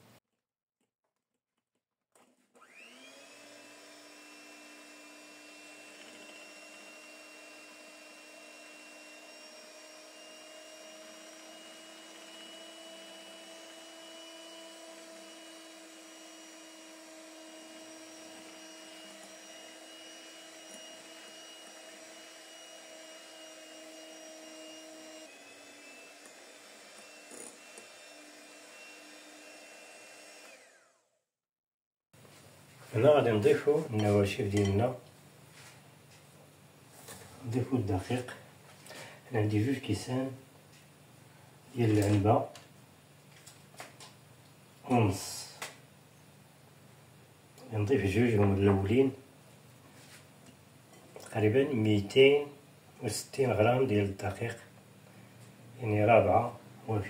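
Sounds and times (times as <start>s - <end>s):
electric hand mixer running: 2.5s - 31.1s.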